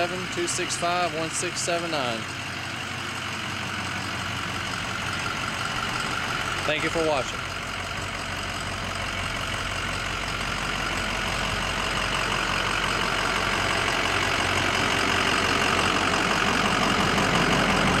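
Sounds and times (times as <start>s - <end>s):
diesel engine idling: 0.0s - 18.0s.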